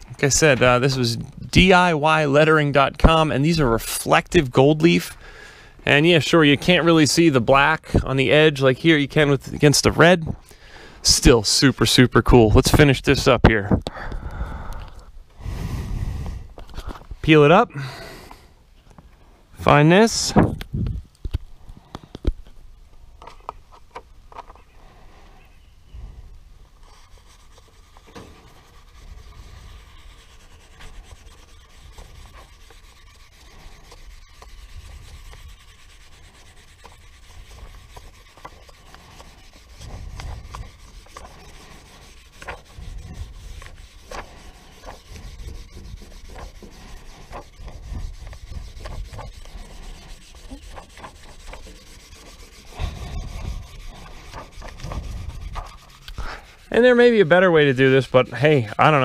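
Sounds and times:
squeegee scraping on paper: 26.7 - 59.0.

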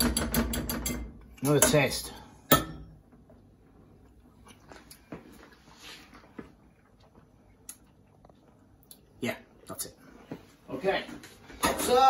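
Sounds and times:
utensils and bowl clicking: 0.0 - 3.0.

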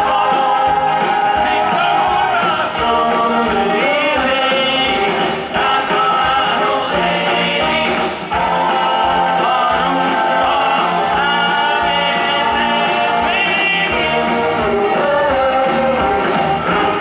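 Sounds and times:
live rock band playing: 0.0 - 17.0
man singing: 0.0 - 17.0.

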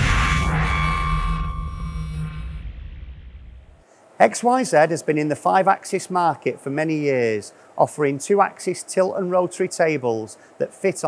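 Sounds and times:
steady ringing tone: 0.0 - 3.6
low rumbling drone: 0.0 - 3.8.

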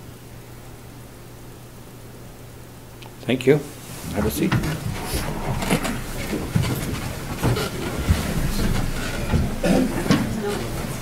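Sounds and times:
people shuffling in chairs: 3.7 - 11.0.

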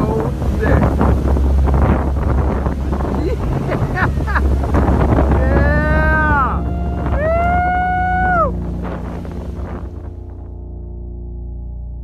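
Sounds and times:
wind buffeting microphone: 0.0 - 10.9
motorboat rumble: 0.0 - 12.0
person whooping: 5.4 - 8.6.

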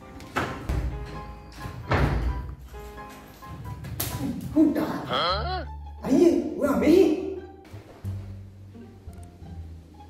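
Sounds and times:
low held bass music: 4.2 - 10.0
man's voice trailing off: 5.0 - 5.7.

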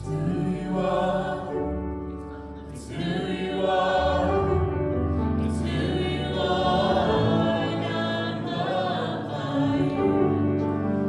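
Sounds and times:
musical accompaniment: 0.0 - 11.0
voices singing worship song: 0.0 - 11.0.

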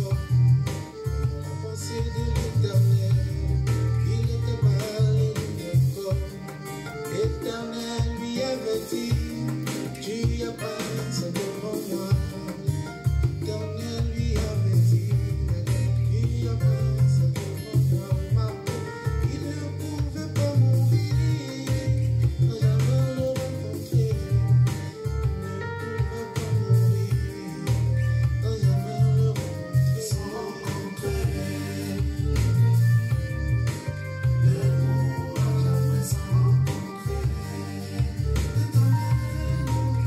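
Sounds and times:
drum kit and heavy bass beat: 0.0 - 40.0
person singing: 0.0 - 40.0
plucked guitar: 0.0 - 40.0.

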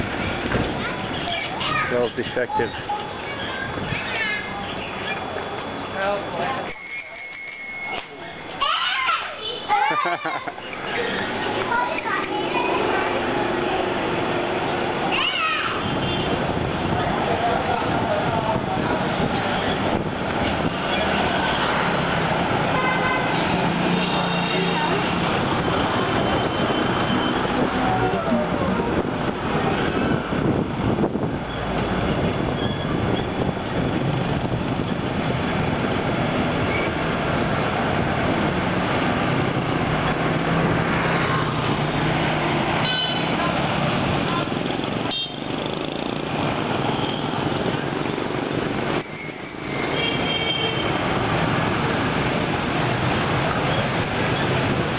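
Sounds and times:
scooters and motorbikes passing: 9.6 - 15.1, 17.0 - 30.1, 33.7 - 54.9.

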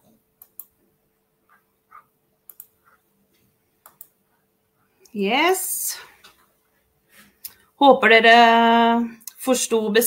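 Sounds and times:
computer mouse clicks: 0.0 - 0.8, 1.5 - 3.0, 3.8 - 4.2.

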